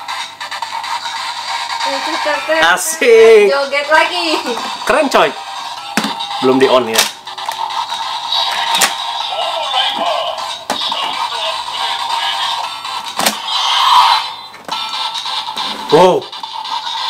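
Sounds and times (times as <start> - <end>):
toy speaker electronic music: 0.0 - 17.0.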